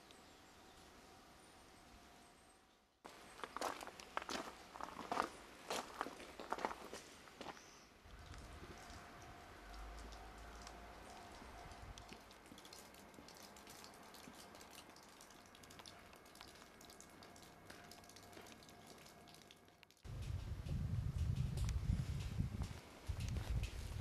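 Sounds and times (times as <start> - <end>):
footsteps crunching on gravel: 3.1 - 9.0
thin steady hum: 7.5 - 24.0.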